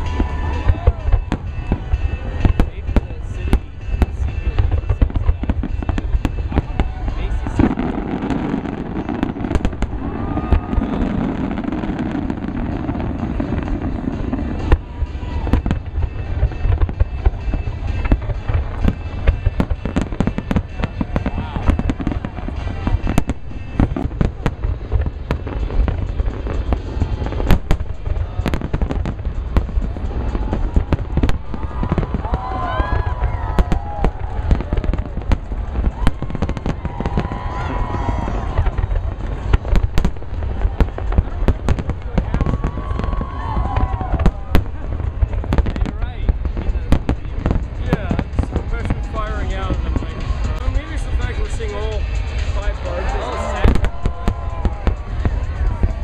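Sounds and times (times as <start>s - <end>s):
deep rumble: 0.0s - 56.0s
firework bursts and crackles: 0.0s - 56.0s.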